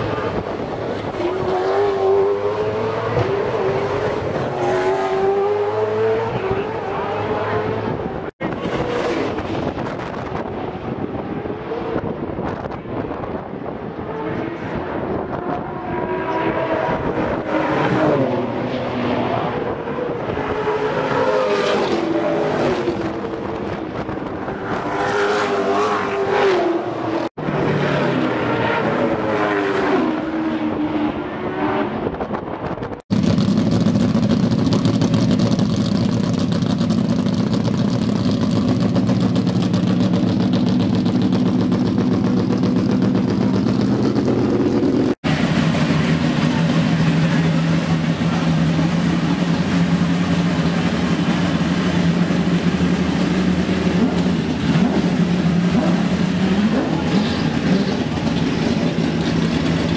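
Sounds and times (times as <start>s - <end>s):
race cars passing: 0.0s - 59.9s
race car engine running steadily: 32.0s - 59.9s.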